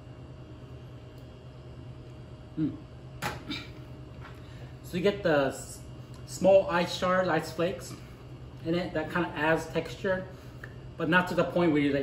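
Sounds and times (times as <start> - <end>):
low room hum: 0.0 - 12.0
man murmuring mm: 2.5 - 2.9.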